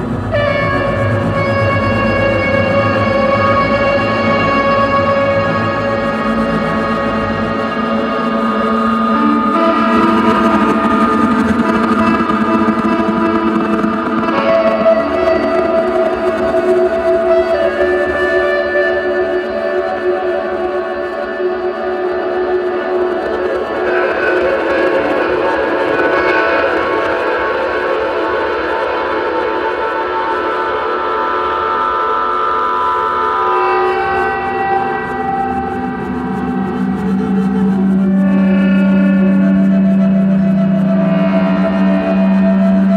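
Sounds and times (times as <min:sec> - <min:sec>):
ambient music with held tones: 0:00.0 - 0:42.9.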